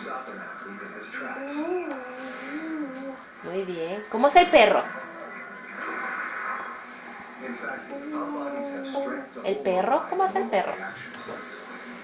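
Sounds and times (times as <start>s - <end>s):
faint television music: 0.0s - 12.0s
television voice: 0.0s - 12.0s.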